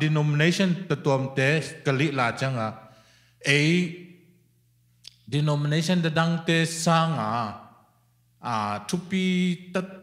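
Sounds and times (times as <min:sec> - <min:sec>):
man talking into microphone: 0:00.0 - 0:02.8, 0:03.4 - 0:04.0, 0:05.1 - 0:07.6, 0:08.4 - 0:10.0.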